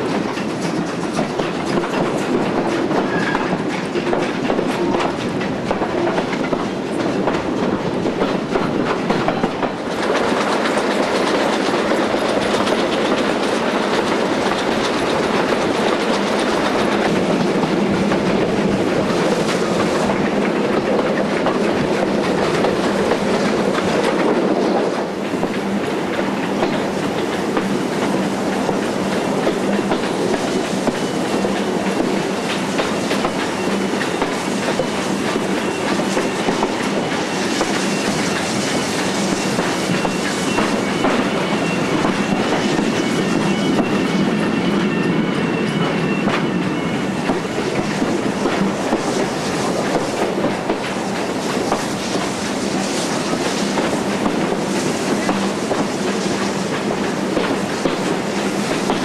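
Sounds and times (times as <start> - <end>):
train rumbling along rails: 0.0 - 59.0
faint high-pitched wheel squeal: 3.0 - 3.6.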